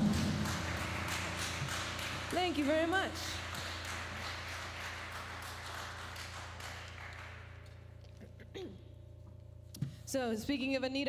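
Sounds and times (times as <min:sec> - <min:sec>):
audience applause: 0:00.0 - 0:07.8
low electrical hum: 0:00.0 - 0:11.0.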